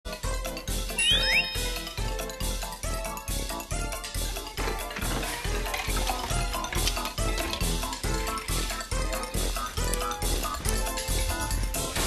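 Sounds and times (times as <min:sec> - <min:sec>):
bouncy children's music: 0:00.1 - 0:12.0
rising whistle-like sound effects: 0:01.0 - 0:02.2.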